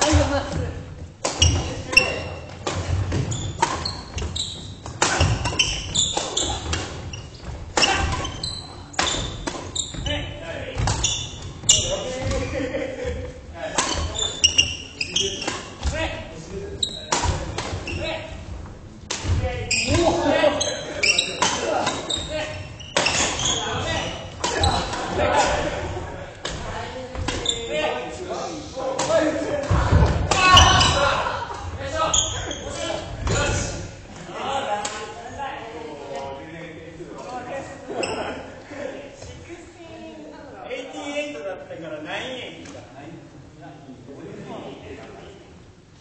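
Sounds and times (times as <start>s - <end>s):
echoing voices: 0.0s - 3.1s, 5.0s - 45.6s.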